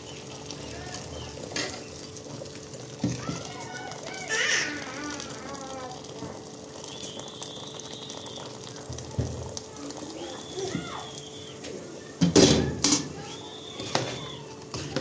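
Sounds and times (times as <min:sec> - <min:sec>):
water pouring into a pot: 0:00.0 - 0:15.0.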